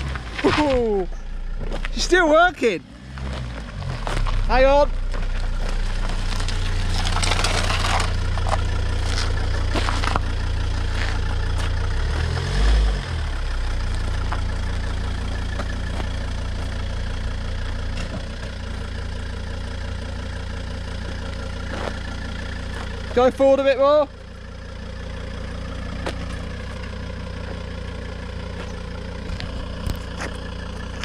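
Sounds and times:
car engine running at low speed: 0.0 - 31.0.

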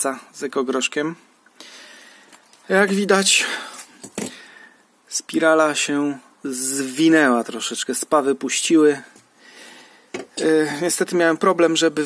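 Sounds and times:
faint background hiss: 0.0 - 12.0
man speaking: 2.6 - 3.8, 5.1 - 9.2, 10.4 - 12.0.

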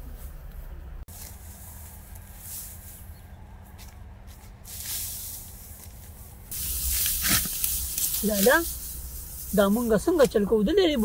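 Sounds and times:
dry wheat stalks rustling: 0.0 - 11.0.

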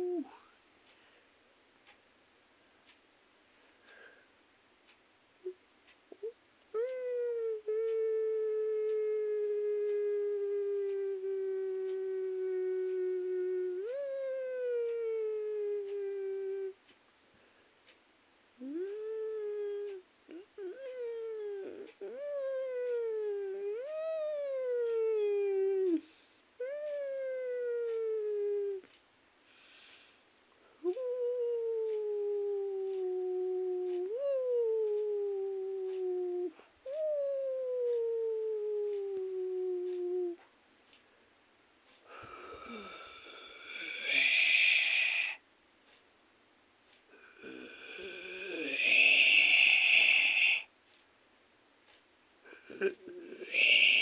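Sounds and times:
long drawn-out howl: 42.2 - 45.4, 47.2 - 50.7.

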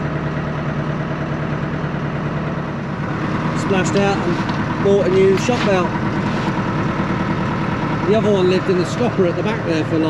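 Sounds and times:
boat engine idling: 0.0 - 10.0.

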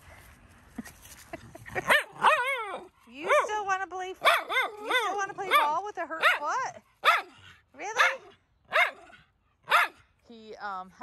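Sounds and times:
dog barking: 1.9 - 3.6, 4.2 - 10.0.

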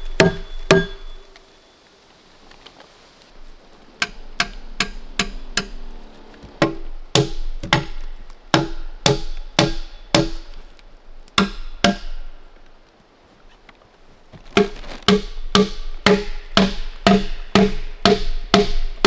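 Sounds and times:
hatchet knocking on logs: 0.2 - 1.0, 4.0 - 5.8, 6.6 - 10.5, 11.4 - 12.2, 14.6 - 19.0.

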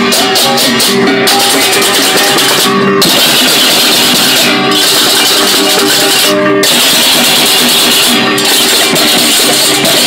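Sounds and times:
gong tones: 0.0 - 9.0
drums: 0.0 - 10.0
hand cymbals clashing: 0.0 - 10.0.

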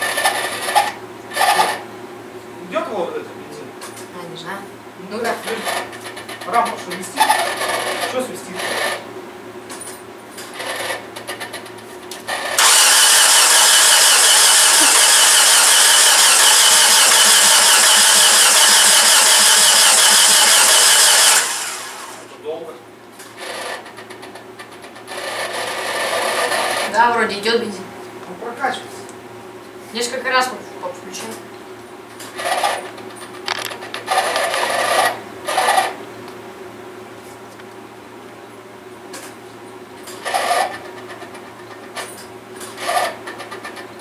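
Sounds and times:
starter motor cranking: 12.4 - 22.4.

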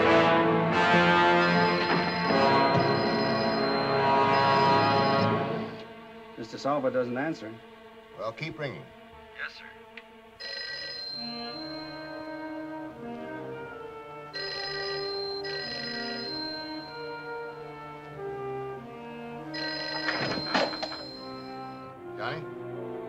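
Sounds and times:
orchestral film music: 0.0 - 23.0
telephone bell ringing: 1.3 - 5.8, 10.4 - 12.5, 14.4 - 18.0, 19.5 - 21.9.

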